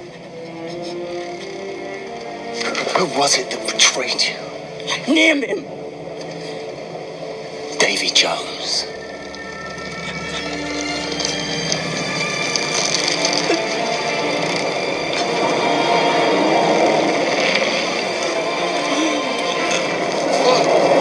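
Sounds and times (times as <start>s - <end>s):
film soundtrack music: 0.0s - 21.0s.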